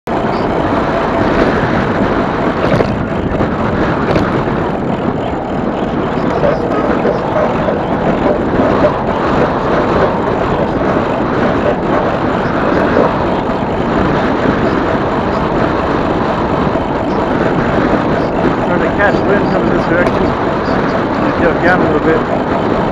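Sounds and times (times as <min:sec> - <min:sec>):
wind on microphone: 0:00.1 - 0:22.9.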